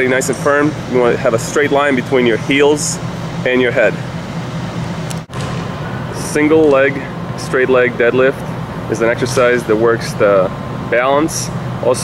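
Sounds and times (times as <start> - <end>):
low hum: 0.0 - 12.0
steady background hiss: 0.0 - 12.0.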